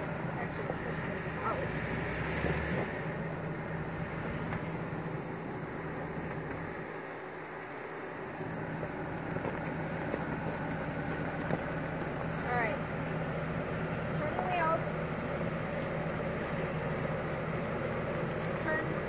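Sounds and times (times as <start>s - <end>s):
car engine idling: 0.0s - 19.0s
vehicle crawling over rocky trail: 0.0s - 19.0s.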